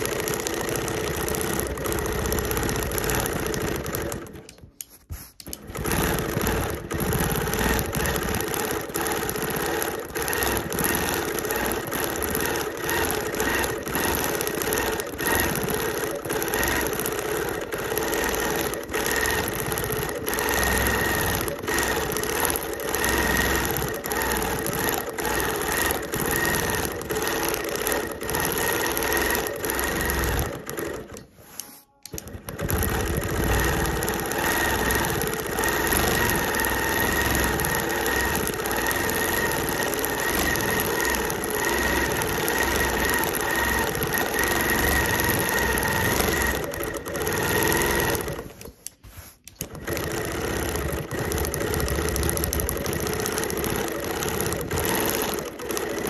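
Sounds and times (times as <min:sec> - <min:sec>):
quilting machine stitching: 0:00.0 - 0:56.0.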